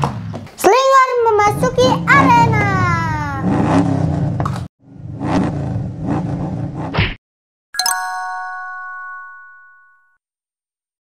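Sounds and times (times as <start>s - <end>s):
big engine revving: 1.6s - 4.4s.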